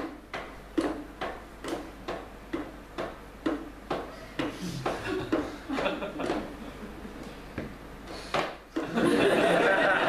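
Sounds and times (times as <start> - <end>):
rhythmic knocking on wood: 0.0 - 6.6.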